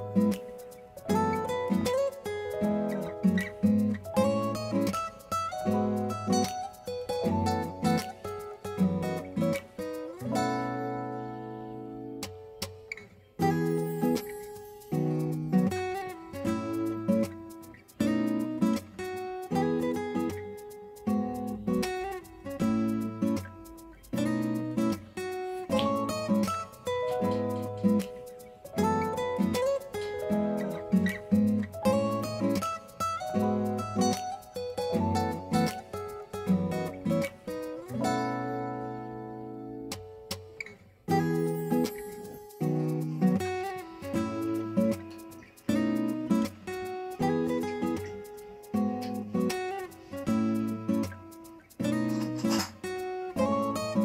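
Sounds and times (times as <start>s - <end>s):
acoustic guitar music: 0.0s - 54.0s.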